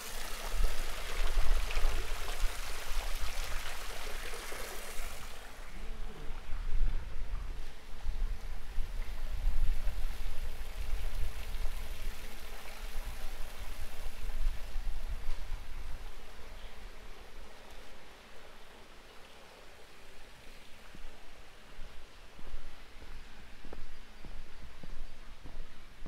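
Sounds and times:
wind rumbling on microphone: 0:00.0 - 0:04.0, 0:05.6 - 0:18.1, 0:20.7 - 0:26.0
steady hiss: 0:00.0 - 0:26.0.

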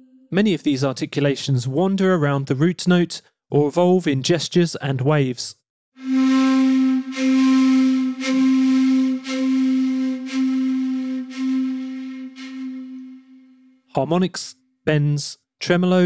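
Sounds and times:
breathy pulsing flute note: 0:00.0 - 0:00.4, 0:06.0 - 0:13.9.

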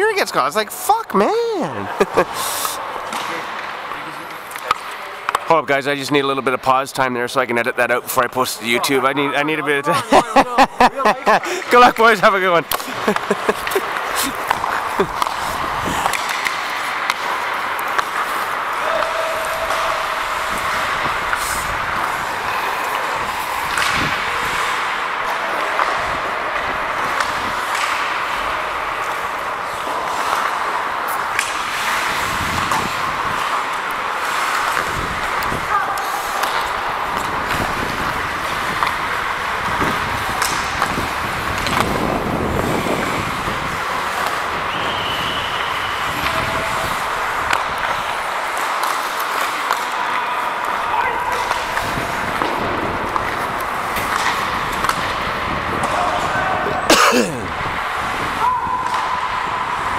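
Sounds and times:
hockey sticks and puck clacking: 0:00.1 - 0:06.8, 0:07.4 - 0:59.9
skate blades scraping ice: 0:01.3 - 0:05.4, 0:11.4 - 0:59.9.

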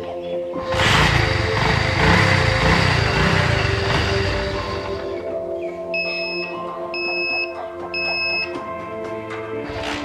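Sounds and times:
background music: 0:00.0 - 0:10.0
high-pitched buzzer beeps: 0:06.0 - 0:08.6.

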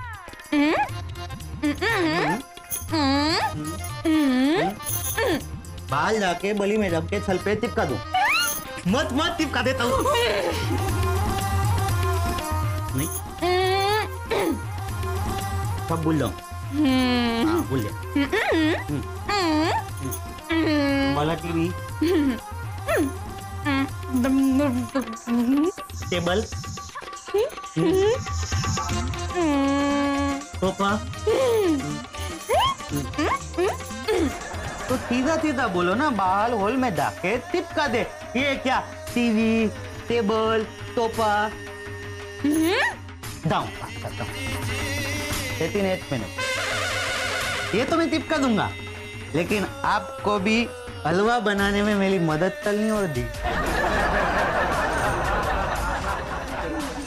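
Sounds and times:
background music: 0:00.0 - 0:57.0
background music with low beat: 0:47.4 - 0:57.0.

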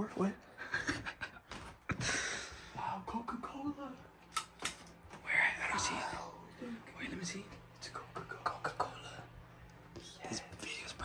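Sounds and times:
sharp clicks: 0:04.3 - 0:05.0.

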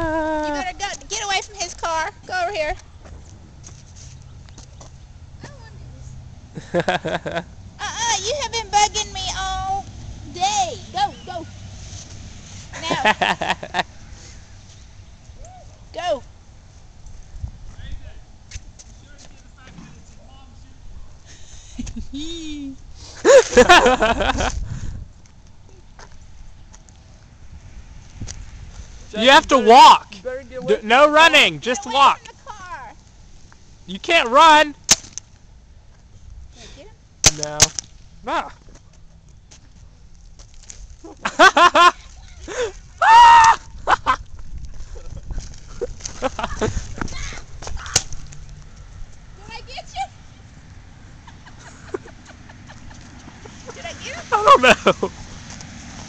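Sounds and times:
people laughing: 0:06.6 - 0:07.5, 0:12.8 - 0:13.9, 0:21.5 - 0:24.6, 0:41.2 - 0:42.8, 0:43.7 - 0:46.8, 0:51.2 - 0:55.2.

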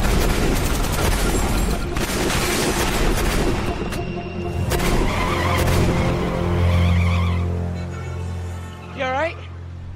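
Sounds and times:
dramatic background music: 0:00.0 - 0:09.9
tires squealing: 0:04.8 - 0:08.2.

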